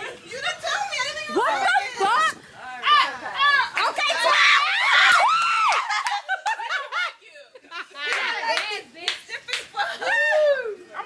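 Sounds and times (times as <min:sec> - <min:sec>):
women shrieking and laughing: 0:01.2 - 0:08.4, 0:09.7 - 0:11.0.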